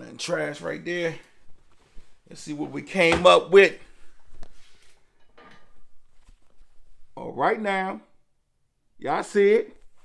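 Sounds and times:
fabric rustling: 0:03.9 - 0:07.2.

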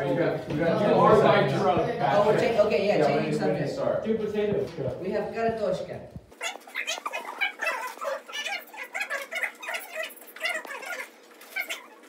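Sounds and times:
marker squeaking on whiteboard: 0:06.3 - 0:12.0.

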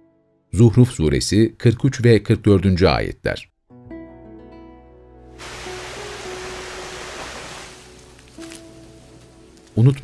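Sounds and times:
soft background music: 0:03.7 - 0:10.0
waterfall rushing water: 0:05.4 - 0:08.2.

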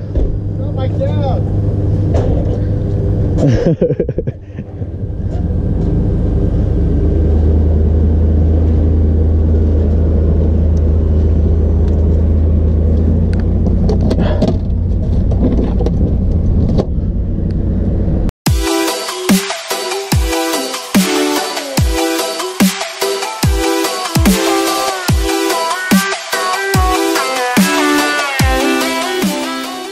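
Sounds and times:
boat engine idling: 0:04.2 - 0:15.3
electronic music: 0:18.5 - 0:29.9.

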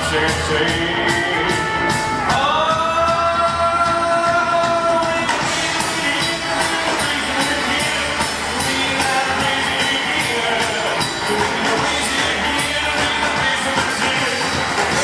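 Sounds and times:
live rock band playing: 0:00.0 - 0:15.0
man singing: 0:00.0 - 0:15.0.

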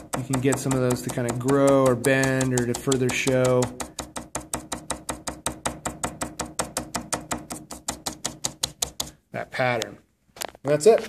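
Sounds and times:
tapping on plastic cutting board: 0:00.0 - 0:09.2.

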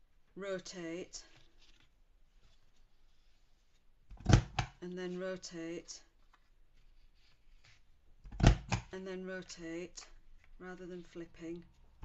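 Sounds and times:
card rustling: 0:01.2 - 0:04.5, 0:06.1 - 0:08.0.

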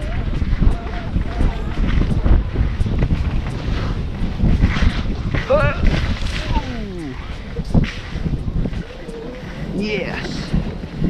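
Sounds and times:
skis sliding over snow: 0:00.0 - 0:11.0
wind rushing over microphone: 0:00.0 - 0:11.0.

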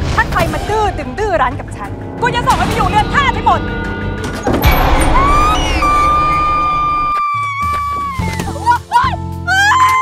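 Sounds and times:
background music: 0:00.0 - 0:10.0
woman screaming: 0:05.1 - 0:10.0.

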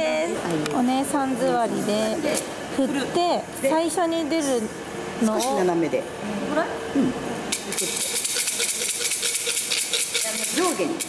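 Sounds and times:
fortune sticks rattling in cylinder: 0:07.5 - 0:11.0.

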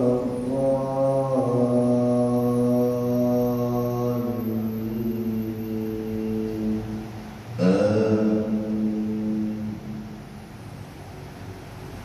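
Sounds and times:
man chanting recitation: 0:00.0 - 0:10.5.

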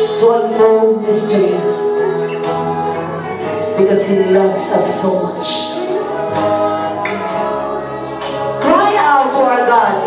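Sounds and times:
worship band playing slow chords: 0:00.0 - 0:10.0.

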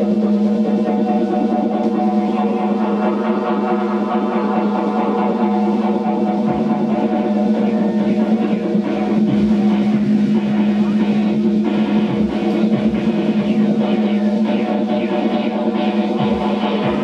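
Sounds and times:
synthesizer chords: 0:00.0 - 0:17.0
drum beat: 0:04.9 - 0:17.0.

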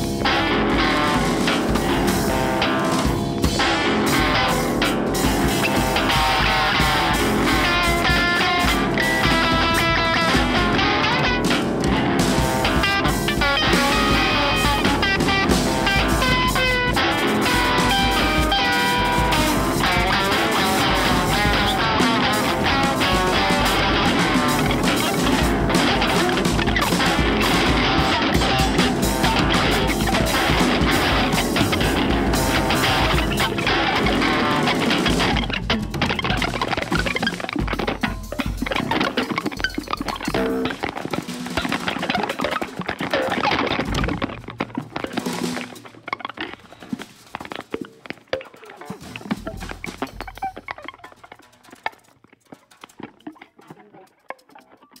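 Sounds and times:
drum kit: 0:00.0 - 0:55.0
electric guitar: 0:00.0 - 0:55.0.

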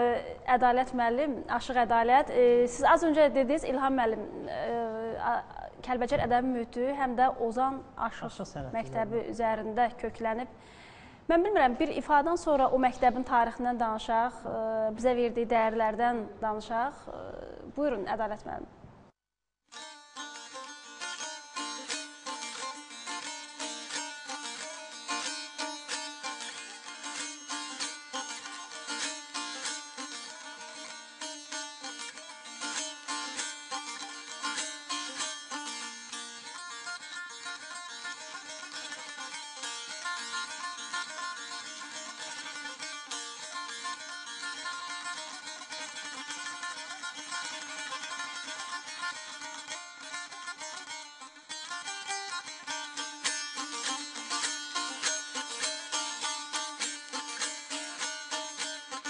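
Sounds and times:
plucked string instrumental: 0:19.7 - 0:59.0.

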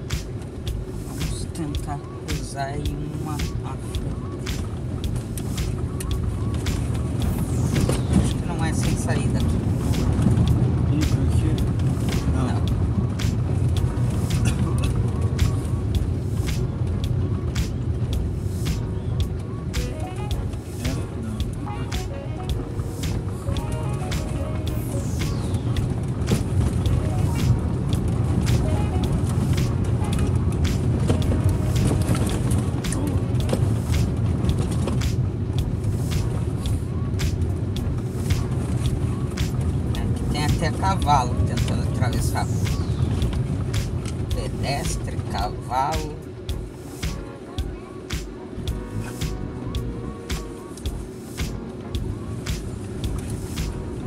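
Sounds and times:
wheels knocking on cobblestones: 0:00.0 - 0:48.9
car road noise rumble: 0:00.0 - 0:54.0.

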